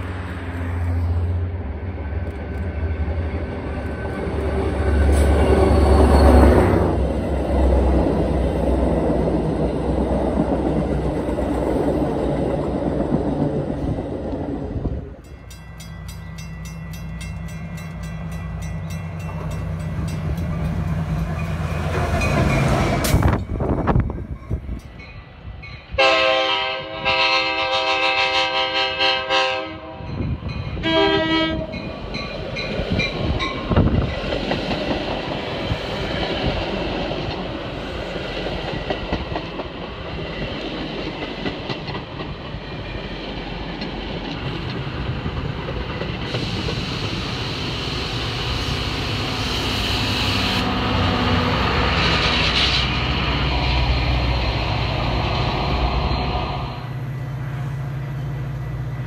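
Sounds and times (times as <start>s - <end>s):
diesel locomotive rumbling: 0.0s - 59.0s
train wheels clattering on rails: 15.3s - 25.2s, 31.6s - 47.8s
train horn blasts: 25.9s - 31.9s, 50.0s - 53.0s.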